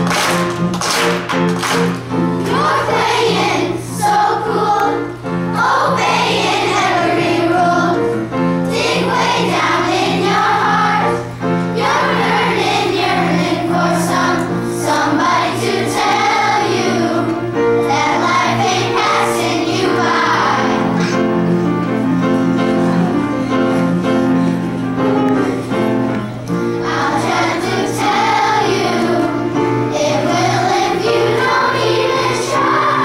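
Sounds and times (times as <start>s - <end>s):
children's choir singing: 1.7s - 33.0s.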